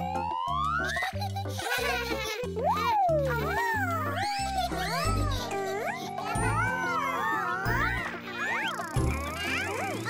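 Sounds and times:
cartoon music with bass line: 0.0 - 10.0
high wordless cartoon voices: 2.6 - 10.0.

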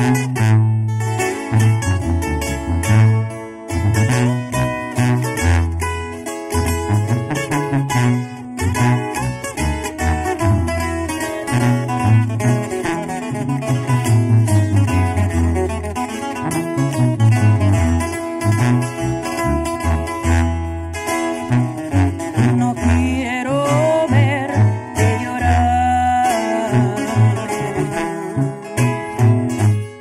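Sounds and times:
acoustic guitar strumming: 0.0 - 30.0
sousaphone bass line: 0.0 - 30.0
twelve-string guitar melody: 0.0 - 30.0.

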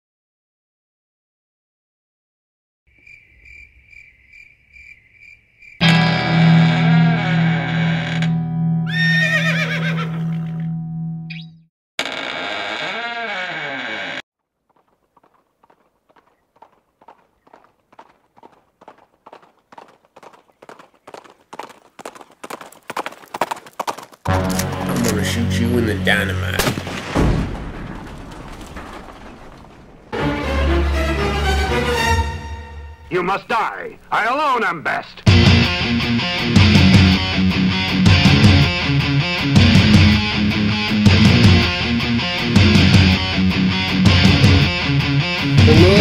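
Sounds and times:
horse whinnying: 6.4 - 10.7
horse hoofbeats: 14.6 - 26.2
loud distorted music: 45.5 - 46.0.

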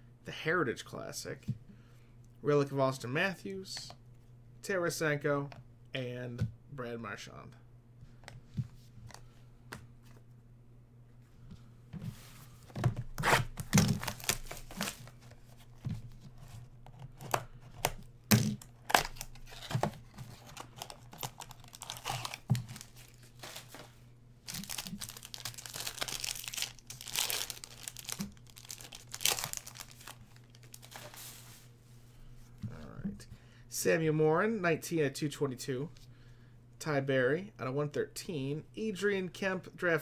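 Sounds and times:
card pack tearing and crinkling: 13.2 - 15.2, 17.2 - 31.4.

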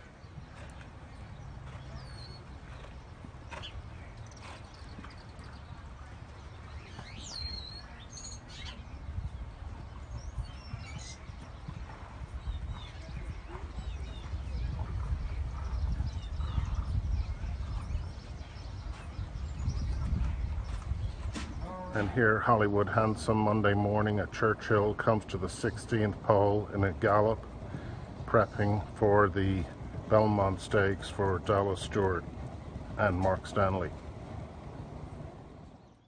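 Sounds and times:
galloping horse hoofbeats on dirt: 0.0 - 8.2, 8.9 - 22.2, 26.0 - 36.0
birds chirping: 0.0 - 36.0.

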